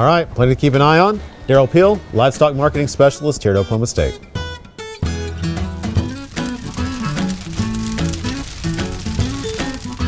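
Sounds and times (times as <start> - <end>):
instrumental guitar music: 3.6 - 10.0.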